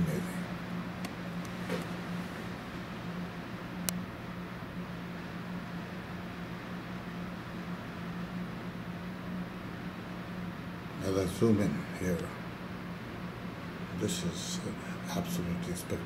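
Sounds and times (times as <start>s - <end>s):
low even hum: 0.0s - 16.0s.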